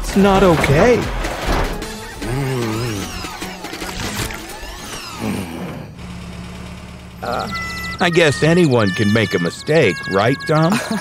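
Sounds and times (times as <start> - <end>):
background music: 0.0 - 5.2
cartoon truck engine: 0.0 - 11.0.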